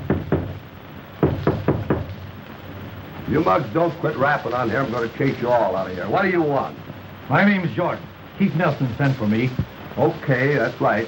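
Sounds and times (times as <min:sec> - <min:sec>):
knocking on a door: 0:00.0 - 0:00.6, 0:01.2 - 0:02.2.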